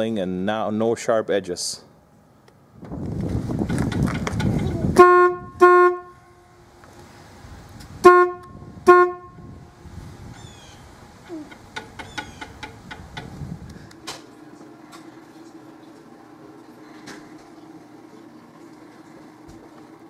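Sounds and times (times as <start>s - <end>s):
forklift horn honking: 4.9s - 6.6s, 8.0s - 9.7s.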